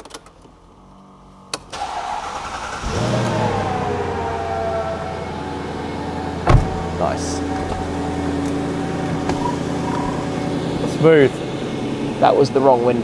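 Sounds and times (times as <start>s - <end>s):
car engine idling: 1.3s - 13.0s
thump: 6.5s - 6.8s.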